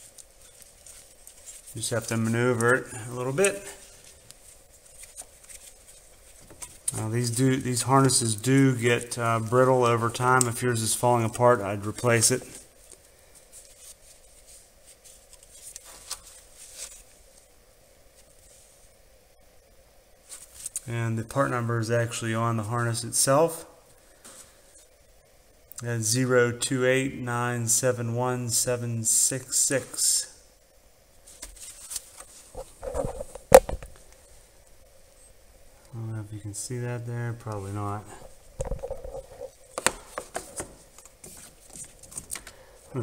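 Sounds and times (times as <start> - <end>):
gloved hands rustling plastic: 0.0 - 17.5, 31.2 - 34.2, 37.4 - 43.0
faint steady hum: 0.0 - 43.0.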